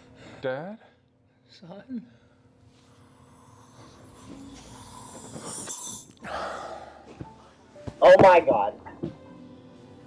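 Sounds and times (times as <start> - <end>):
gas canister hissing: 4.2 - 6.1.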